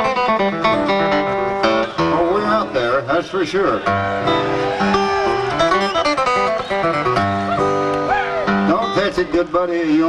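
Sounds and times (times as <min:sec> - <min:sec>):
acoustic guitars picking: 0:00.0 - 0:10.0.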